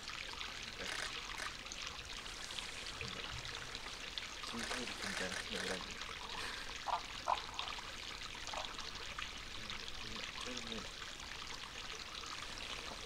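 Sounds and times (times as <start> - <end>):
water trickling over rocks: 0.0 - 13.0.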